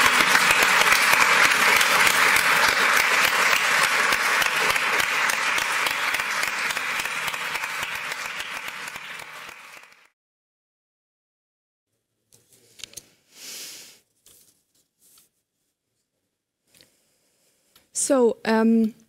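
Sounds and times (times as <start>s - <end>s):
audience applauding: 0.0s - 10.2s.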